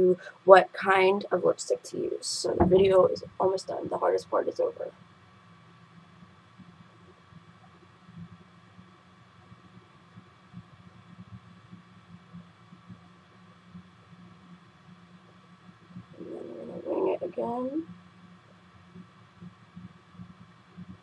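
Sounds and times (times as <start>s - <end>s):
low steady hum: 0.0s - 21.0s
faint small ticks: 5.0s - 16.1s, 17.9s - 21.0s.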